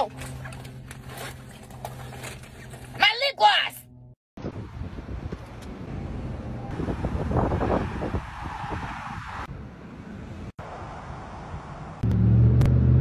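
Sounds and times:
road traffic: 0.0 - 13.0
wind noise on microphone: 4.4 - 9.8.

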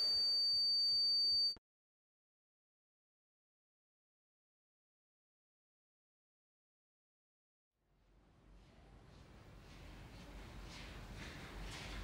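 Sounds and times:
high-pitched ringing tone: 0.0 - 1.6
faint room tone: 7.8 - 12.0.

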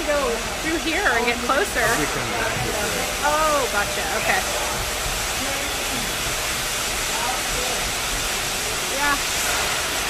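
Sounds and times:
factory machinery din: 0.0 - 10.0.

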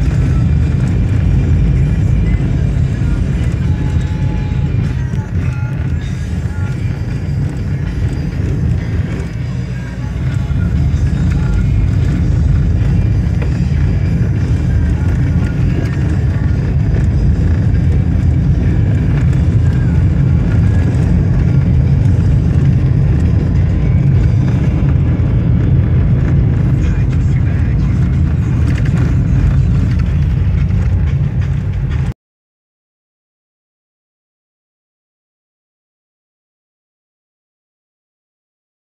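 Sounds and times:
music with singing: 0.0 - 32.1
road and engine rumble: 0.0 - 32.2.

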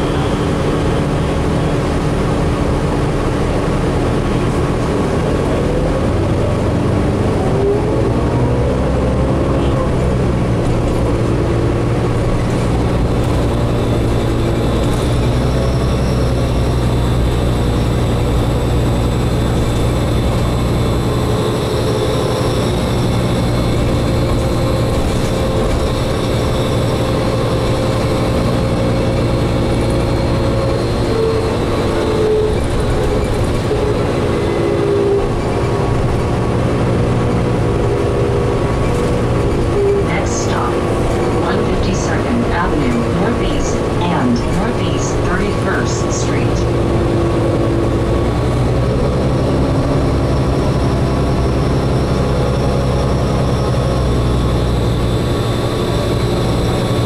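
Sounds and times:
diesel engine low hum: 0.0 - 57.0.

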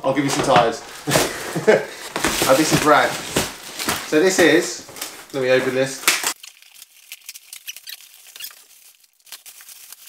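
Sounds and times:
plastic wrapping crinkling: 0.1 - 10.0
cardboard box rustling: 0.2 - 5.8.

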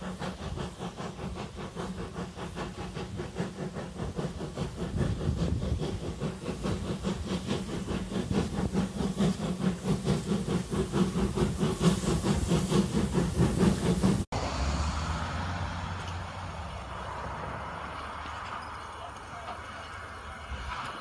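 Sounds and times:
hissing rumble: 0.0 - 21.0
steam locomotive exhaust beats: 0.0 - 21.0.

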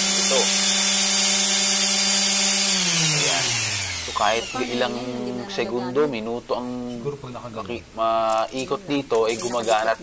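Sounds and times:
sander winding down: 0.0 - 5.7
orbital sander running: 0.0 - 6.3.

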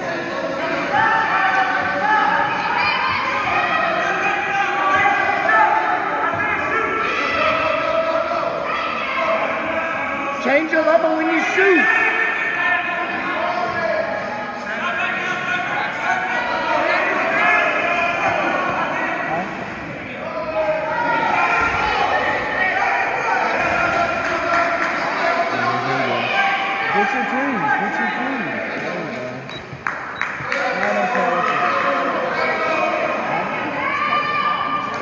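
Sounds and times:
people shouting in echoing gym: 0.0 - 28.7, 30.6 - 35.0.

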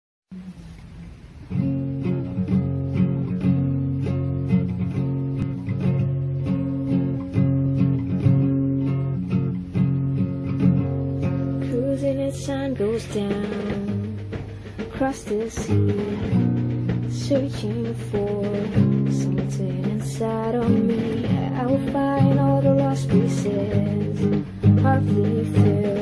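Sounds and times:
acoustic guitar strumming: 0.3 - 26.0.

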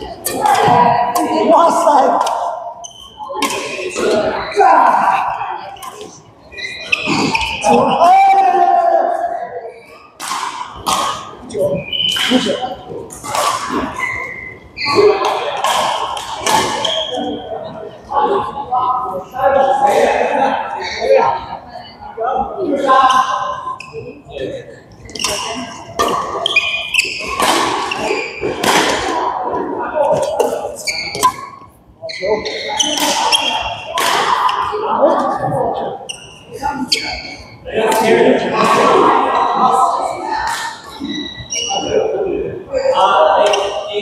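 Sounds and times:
people talking: 0.0 - 44.0
racket striking shuttlecock: 10.2 - 11.3.

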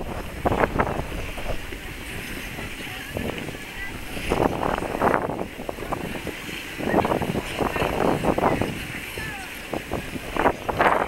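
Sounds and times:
wind rumbling on microphone: 0.0 - 11.0
scattered voices: 1.6 - 10.2.

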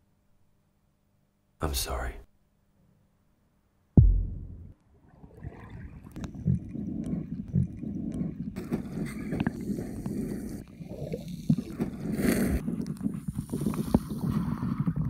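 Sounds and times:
deep thud: 4.0 - 4.8
underwater churning water: 5.0 - 15.0.

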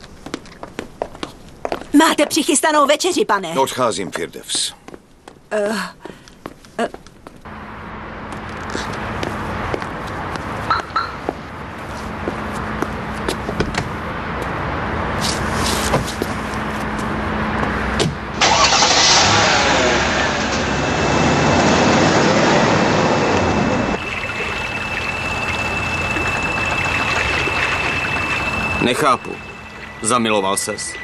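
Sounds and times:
car engine starting and running: 16.1 - 31.0.

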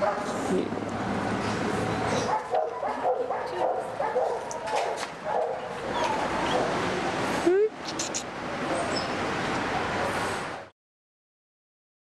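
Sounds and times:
dog whining and yipping: 4.6 - 6.7.

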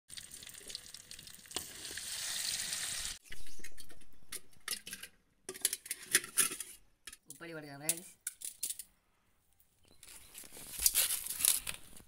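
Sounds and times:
fish sizzling in oil: 0.1 - 3.2.

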